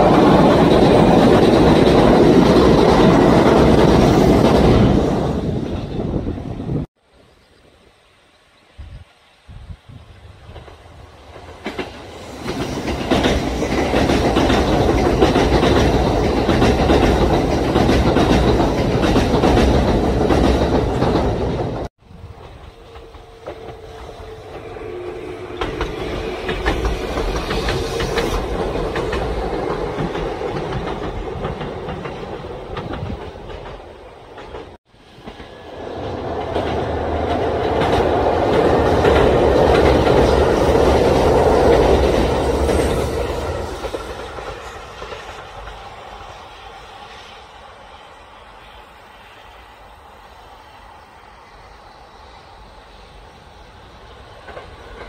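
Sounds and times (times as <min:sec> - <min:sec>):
wheels clacking over rail joints: 0:00.0 - 0:06.2, 0:10.5 - 0:46.0
electric train passing: 0:00.0 - 0:06.9, 0:09.4 - 0:55.0.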